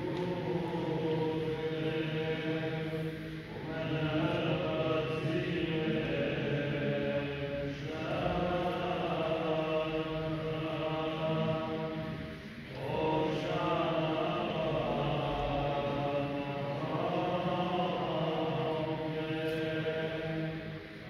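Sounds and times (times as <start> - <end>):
clergy chanting: 0.0 - 21.0.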